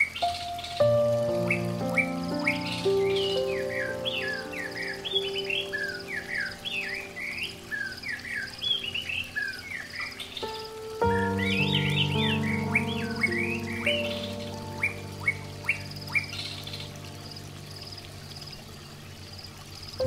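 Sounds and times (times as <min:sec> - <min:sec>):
soft instrumental music: 0:00.0 - 0:19.2
birds chirping: 0:00.0 - 0:20.0.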